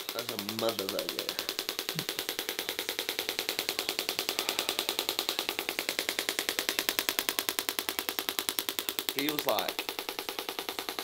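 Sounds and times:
shockwave applicator clicking pulses: 0.0 - 11.0.

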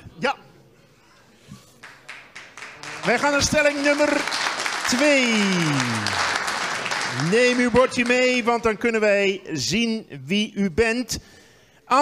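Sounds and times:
man speaking into microphone: 3.0 - 6.2, 7.1 - 11.2.

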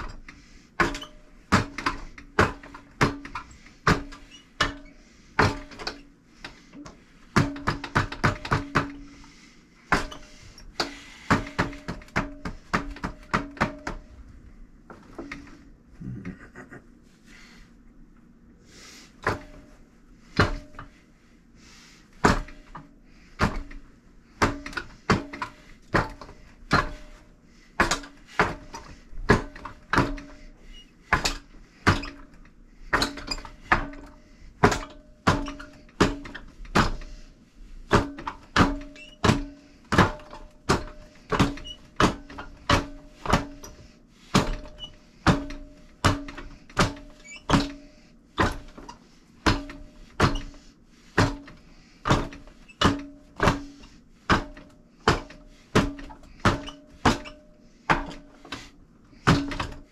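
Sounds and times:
arms knocking wooden dummy: 0.0 - 9.1, 9.9 - 14.2, 19.2 - 19.7, 20.4 - 20.9, 22.2 - 27.2, 27.8 - 30.4, 31.1 - 37.2, 37.9 - 50.6, 51.2 - 58.6, 59.2 - 59.9.

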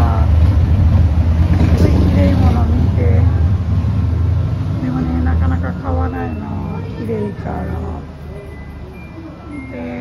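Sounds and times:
people talking: 0.0 - 0.4, 1.8 - 3.4, 4.8 - 10.0.

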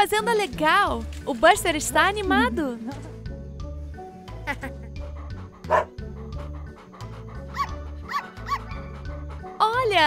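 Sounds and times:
light background music with bass: 0.0 - 10.0
cartoon puppies yapping: 7.5 - 8.9.

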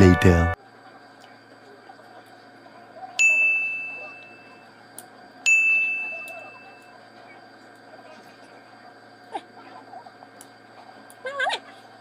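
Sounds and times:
bell-like dings: 3.2 - 4.5, 5.5 - 6.8.

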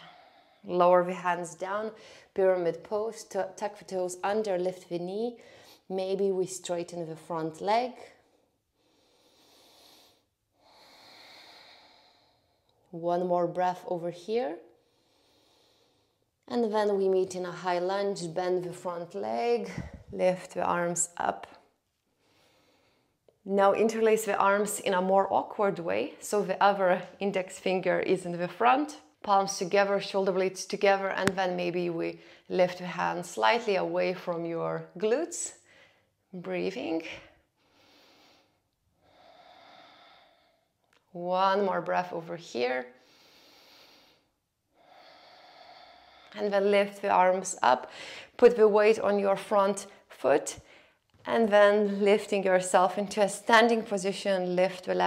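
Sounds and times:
woman breathing through nose: 8.8 - 12.7, 14.8 - 16.3, 37.6 - 40.8, 43.0 - 46.4, 47.9 - 48.3.

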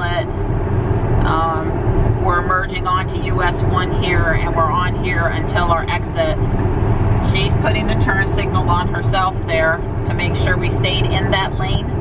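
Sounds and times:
road and tyre noise in car cabin: 0.0 - 12.0.

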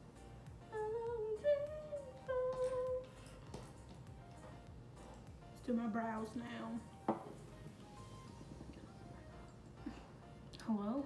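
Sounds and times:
lo-fi music with soft beat: 0.0 - 11.0
woman humming a tune: 0.6 - 3.4.

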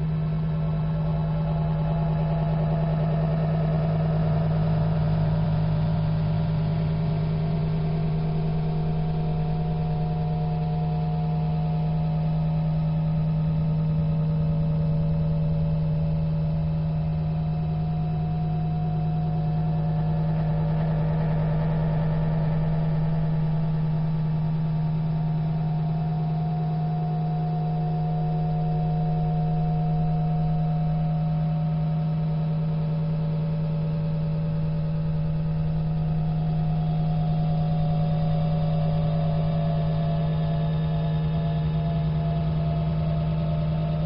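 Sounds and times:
steady low drone: 0.0 - 44.0.

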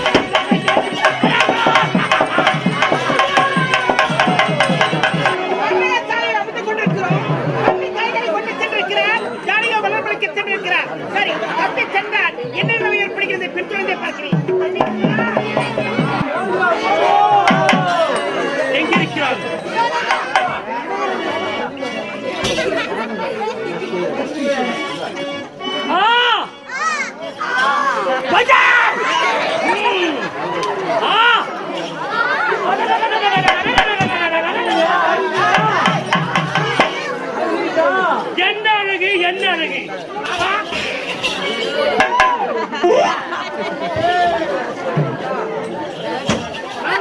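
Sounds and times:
harmonium tones: 0.0 - 10.9, 11.9 - 28.2.

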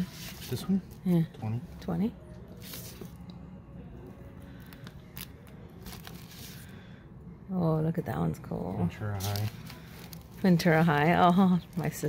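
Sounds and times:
plastic sleeves crinkling: 4.7 - 6.7, 9.1 - 12.0.

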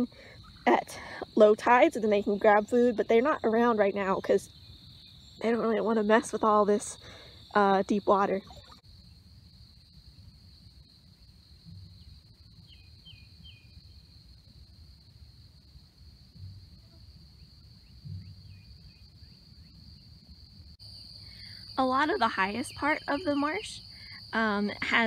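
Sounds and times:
high-pitched insect trill: 0.0 - 25.0.

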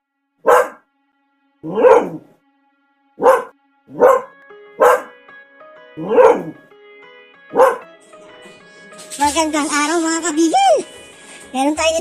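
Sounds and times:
faint steady music tones: 0.0 - 12.0
dog barking: 0.4 - 0.8, 1.6 - 2.3, 3.2 - 5.2, 6.0 - 6.6, 7.5 - 7.9.

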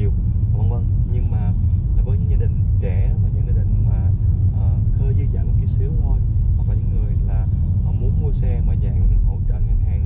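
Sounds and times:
car cabin road rumble: 0.0 - 10.0
man talking: 0.0 - 10.0.

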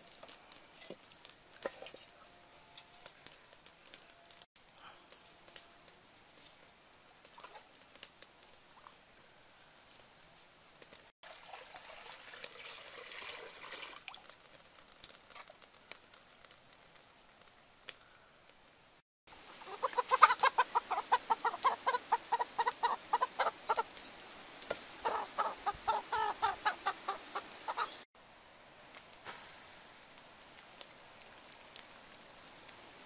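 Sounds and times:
chicken squawking: 19.4 - 23.9, 25.0 - 28.0.

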